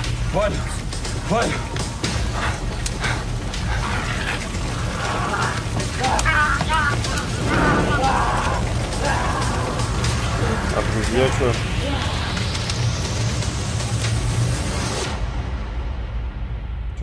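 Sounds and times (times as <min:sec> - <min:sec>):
background music with low drone: 0:00.0 - 0:17.0
people calling out: 0:04.4 - 0:10.7.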